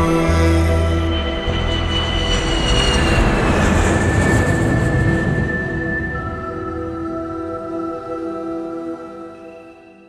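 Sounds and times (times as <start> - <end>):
sustained drone tones: 0.0 - 10.0
loud rushing rumble: 0.8 - 7.0.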